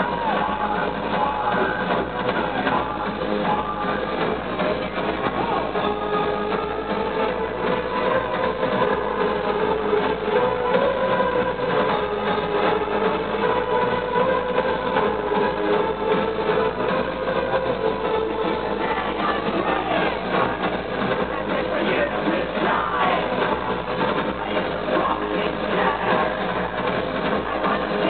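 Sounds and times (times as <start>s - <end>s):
loud live industrial music: 0.0s - 28.0s.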